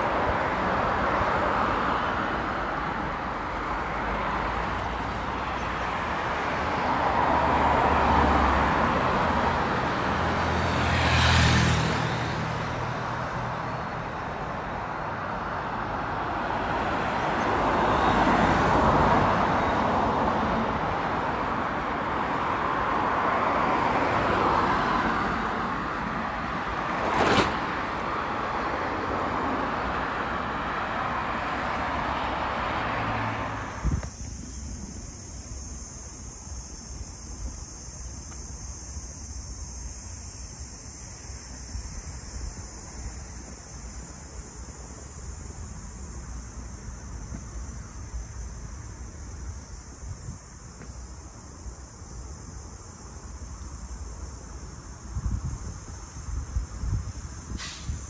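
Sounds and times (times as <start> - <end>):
cars passing: 0.0 - 58.0.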